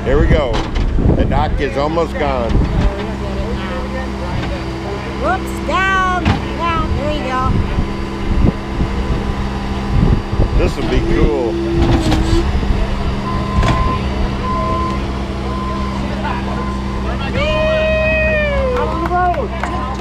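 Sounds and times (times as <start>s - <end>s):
diesel engine running: 0.0s - 20.0s
reversing beeper: 3.1s - 19.0s.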